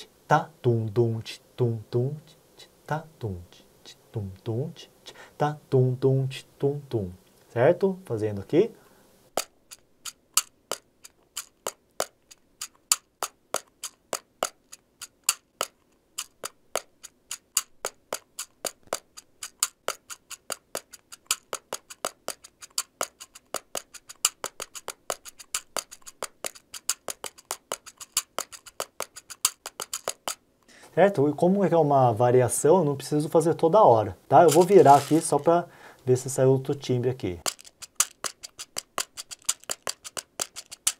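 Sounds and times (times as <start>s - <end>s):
hand drum clicks in samba rhythm: 12.8s - 30.4s, 37.5s - 40.9s.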